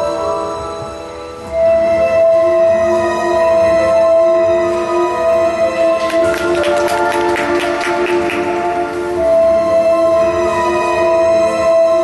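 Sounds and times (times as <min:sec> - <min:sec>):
skating music over speakers: 0:00.0 - 0:12.0.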